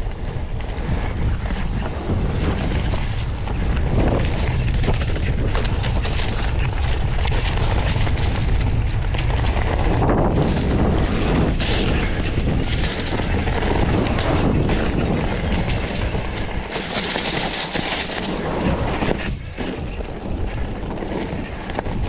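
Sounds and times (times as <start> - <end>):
bike chain and frame rattling: 0.0 - 22.0
bike tyres on dirt and leaves: 0.0 - 22.0
wind rumbling on microphone: 0.0 - 22.0.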